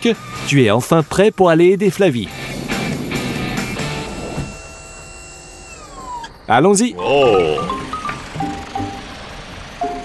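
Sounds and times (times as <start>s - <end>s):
mechanical whine of lift platform: 3.6s - 6.5s, 7.3s - 10.0s.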